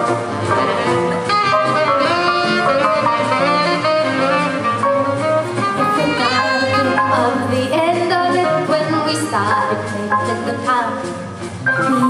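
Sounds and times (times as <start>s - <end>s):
saxophone melody: 0.0s - 8.8s
drums: 0.0s - 12.0s
guitar: 0.0s - 12.0s.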